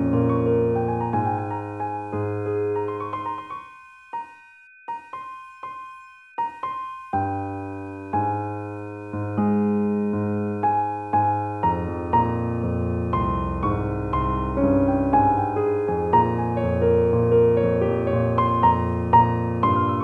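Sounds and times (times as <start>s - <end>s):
slow piano-like keyboard music: 0.0s - 20.0s.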